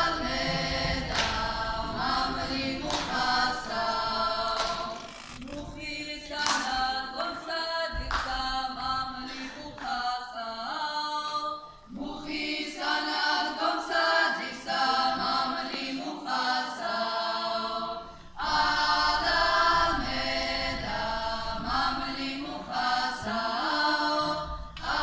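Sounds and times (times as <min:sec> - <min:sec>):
group singing unaccompanied: 0:00.0 - 0:25.0.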